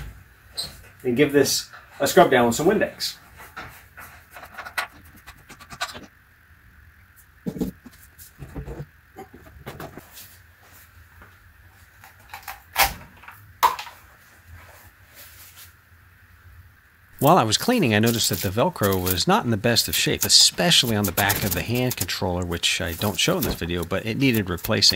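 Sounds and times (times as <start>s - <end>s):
cloth wiping wood: 17.9s - 24.9s.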